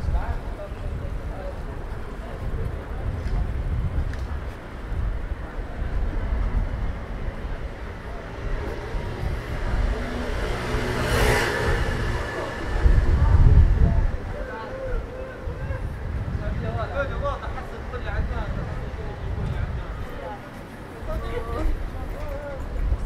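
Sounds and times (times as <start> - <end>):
low traffic rumble: 0.0 - 23.0
passers-by talking: 0.0 - 23.0
motor vehicle driving past: 8.7 - 13.5.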